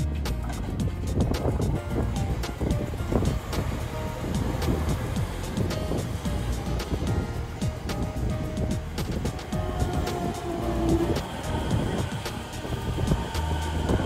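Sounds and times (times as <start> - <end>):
background music: 0.0 - 14.0
wheels rumbling on rail: 0.0 - 14.0
electric train running: 0.4 - 14.0.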